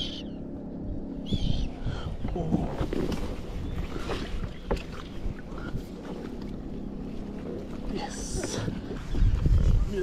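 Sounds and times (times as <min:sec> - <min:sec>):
wind buffeting microphone: 0:00.9 - 0:10.0
water against kayak hull: 0:01.2 - 0:10.0.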